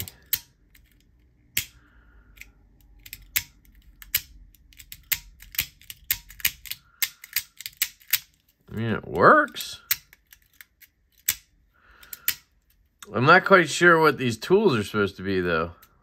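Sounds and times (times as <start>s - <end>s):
multi-tool mechanism clicking: 0.0s - 8.5s.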